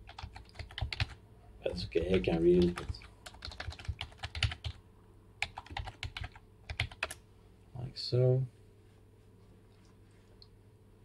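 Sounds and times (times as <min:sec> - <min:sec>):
typing on computer keyboard: 0:00.0 - 0:01.2, 0:02.3 - 0:04.8, 0:05.4 - 0:07.2.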